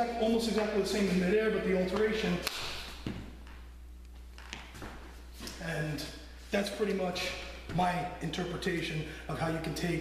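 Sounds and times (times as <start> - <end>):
low room hum: 0.0 - 10.0
hand slap: 1.9 - 3.3.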